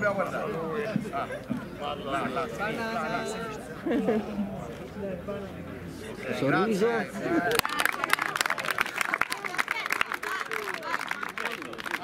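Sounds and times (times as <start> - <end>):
voices talking: 0.0 - 12.0
small group clapping: 7.4 - 12.0.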